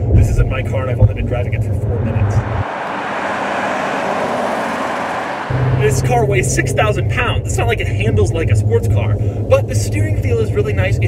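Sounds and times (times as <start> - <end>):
low drone of cabin road noise: 0.0 - 11.0
car passing with tyre noise: 1.4 - 6.9.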